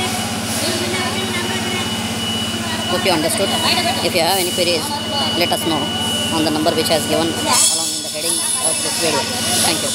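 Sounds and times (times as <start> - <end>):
low machine hum: 0.0 - 9.9.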